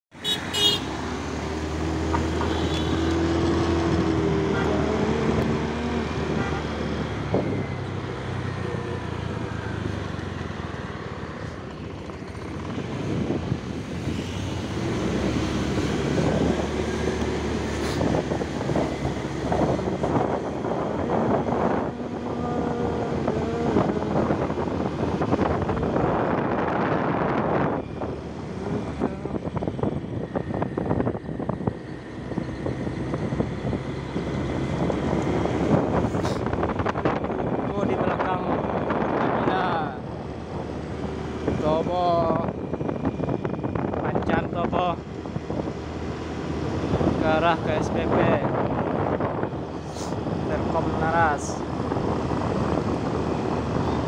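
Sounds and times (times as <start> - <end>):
road and wind noise: 0.0 - 54.0.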